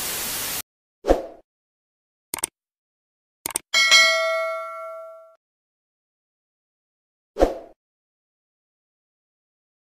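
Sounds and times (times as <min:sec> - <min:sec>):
bell ding: 0:03.8 - 0:05.4.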